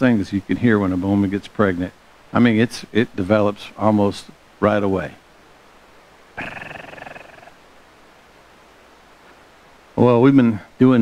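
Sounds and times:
man's raspy rattling vocal sound: 6.4s - 7.6s.

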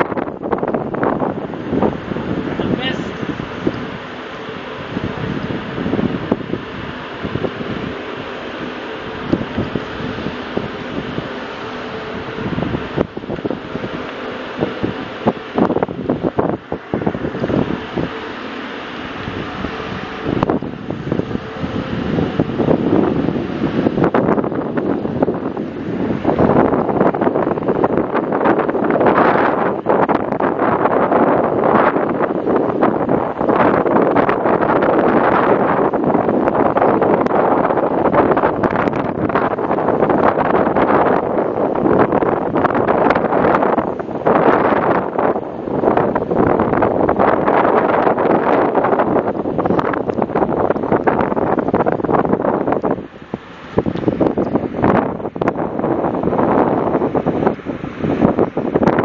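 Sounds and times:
faint steady hum: 0.0s - 59.0s
wind buffeting microphone: 0.0s - 59.0s.

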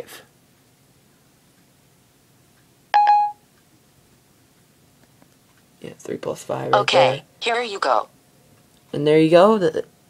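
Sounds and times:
short electronic beep: 3.0s - 3.4s.

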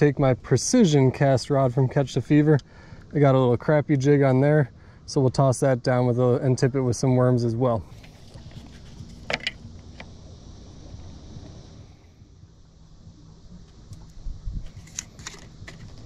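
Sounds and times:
low steady rumble: 0.0s - 16.0s.

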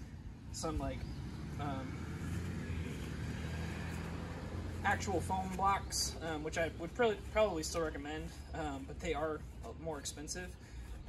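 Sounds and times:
car passing: 0.0s - 8.9s.

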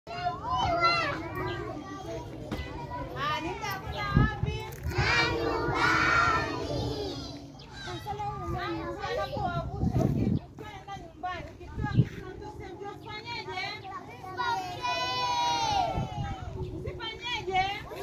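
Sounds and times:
children chattering and calling out: 0.1s - 18.0s.

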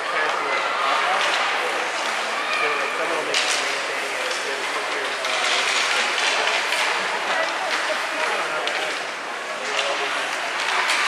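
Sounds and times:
hockey sticks and puck knocking: 3.2s - 11.0s
skate blades scraping ice: 3.3s - 11.0s.

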